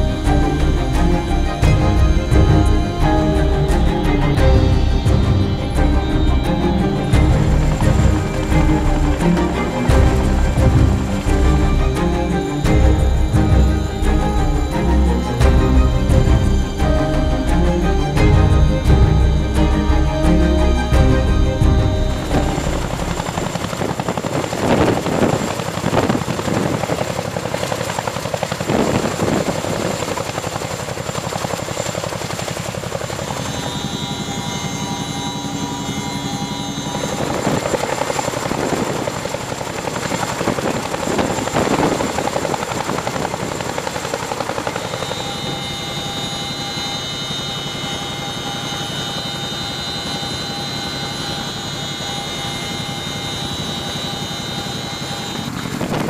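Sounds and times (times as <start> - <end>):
helicopter rotor beat: 0.0 - 56.0
high turbine whine: 0.0 - 56.0.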